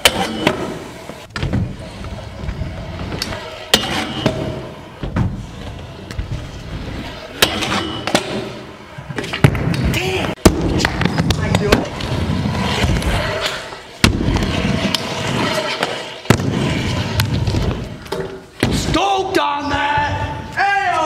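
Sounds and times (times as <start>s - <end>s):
scooter wheels rolling: 0.1s - 18.5s.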